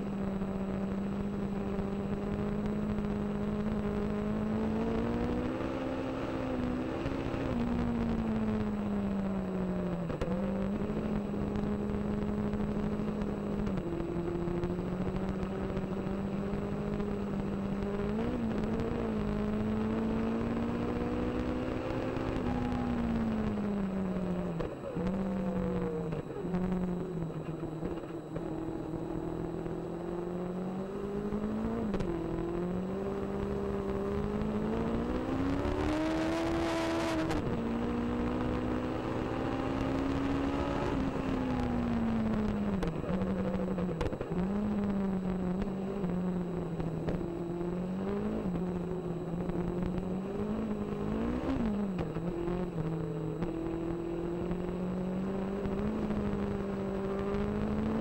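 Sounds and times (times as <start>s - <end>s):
race car engine running hard: 0.0s - 58.0s
road noise: 0.0s - 58.0s.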